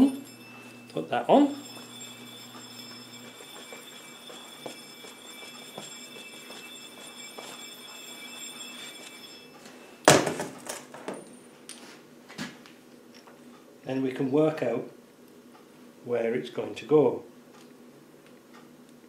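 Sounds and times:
faint high hum: 0:00.0 - 0:11.8.

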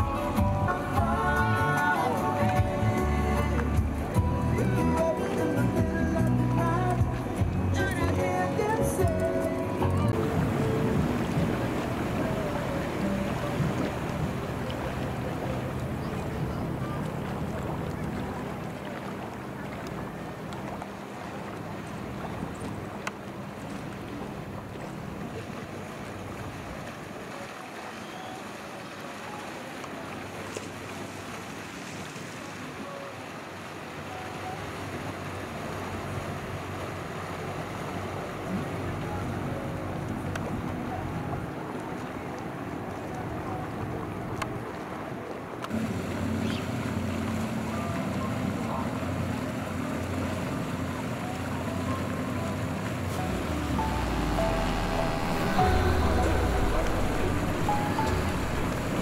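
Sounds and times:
hull wash: 0:00.0 - 0:59.0
outboard boat engine hum: 0:00.0 - 0:59.0
wind: 0:00.0 - 0:59.0.

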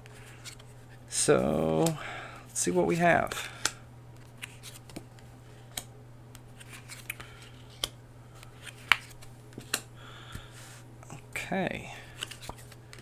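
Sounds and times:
low steady hum: 0:00.0 - 0:13.0
cards snapping on wooden desk: 0:08.6 - 0:09.9.

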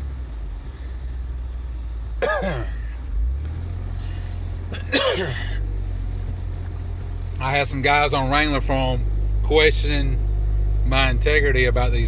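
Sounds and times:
car engine running: 0:00.0 - 0:12.0
man coughing: 0:02.2 - 0:03.0, 0:04.7 - 0:05.7.

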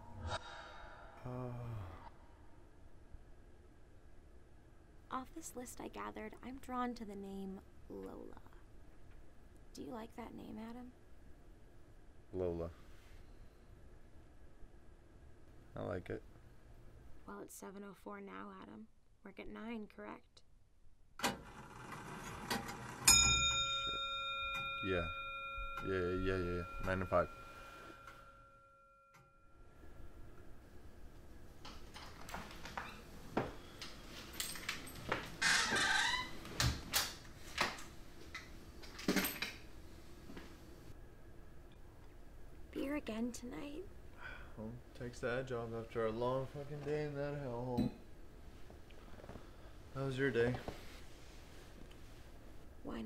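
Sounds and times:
man's low drawn-out groan: 0:01.1 - 0:02.1
bell-like chime ringing: 0:23.1 - 0:29.8.

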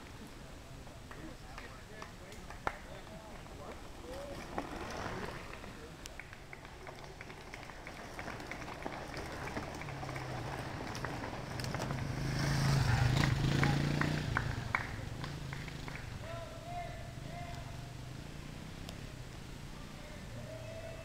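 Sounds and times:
short clicks from bikes: 0:01.0 - 0:16.2
bike tyres rolling on gravel: 0:01.4 - 0:16.4.

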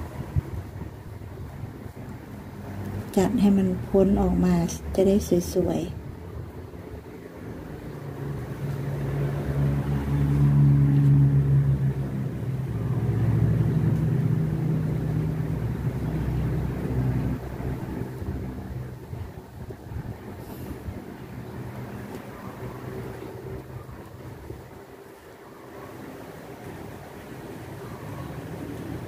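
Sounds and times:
passing vehicle engine drone: 0:00.0 - 0:29.0.

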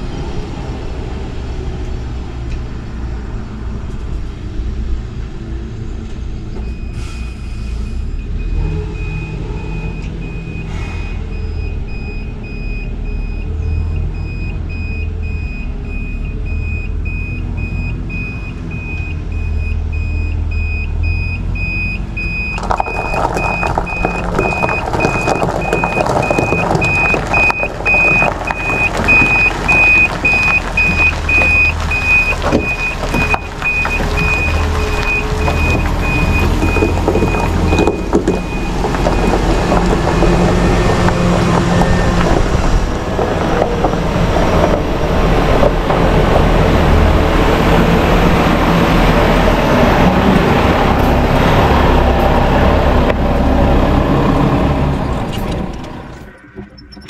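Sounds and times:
diesel truck engine running: 0:00.0 - 0:57.0
reversing beeper: 0:06.6 - 0:40.9
tyres crunching over gravel: 0:22.2 - 0:55.5.

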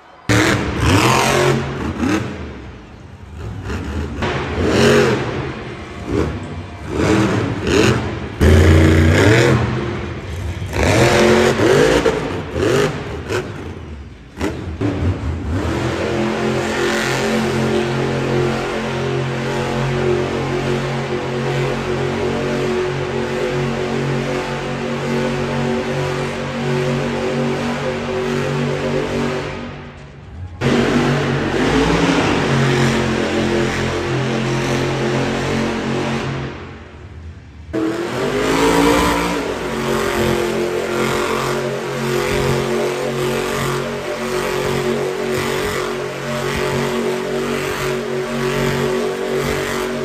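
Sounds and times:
truck engines revving hard: 0:00.0 - 0:50.0.

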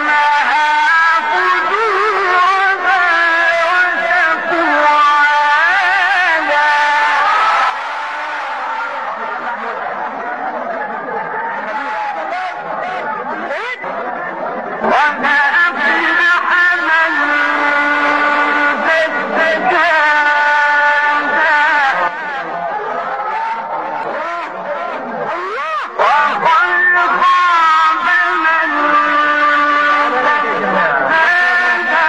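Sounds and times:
man chanting melodic recitation: 0:00.0 - 0:07.4, 0:11.5 - 0:32.0.

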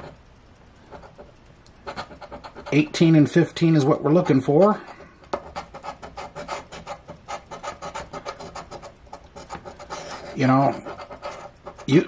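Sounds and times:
coin scraping lottery ticket: 0:04.2 - 0:12.0.

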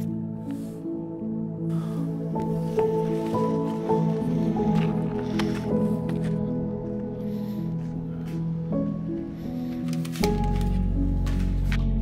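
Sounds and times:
slow instrumental music: 0:00.0 - 0:12.0.

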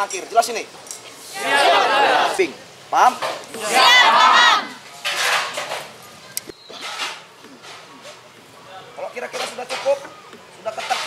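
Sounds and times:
faint voices: 0:05.7 - 0:11.0.

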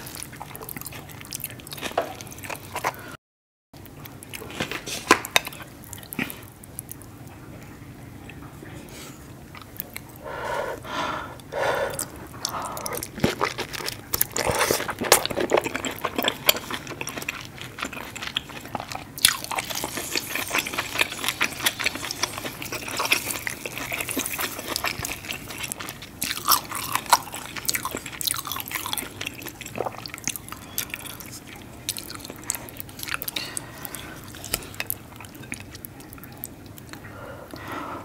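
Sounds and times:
wet chewing and lip smacking: 0:09.5 - 0:10.3, 0:11.4 - 0:37.7
sticky sauce squelches: 0:11.4 - 0:37.7.

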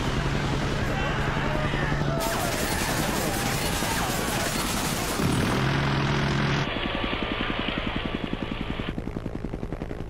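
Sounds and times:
helicopter rotor chopping: 0:00.0 - 0:10.0.

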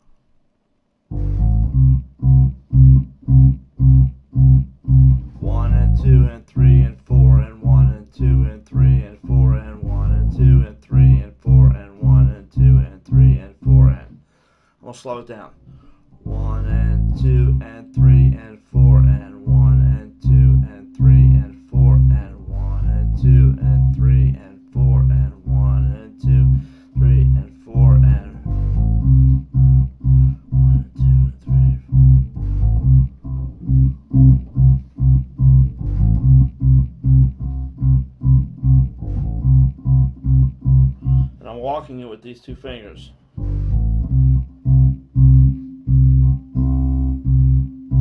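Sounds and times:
electric bass riff: 0:01.1 - 0:14.2, 0:15.7 - 0:48.0.

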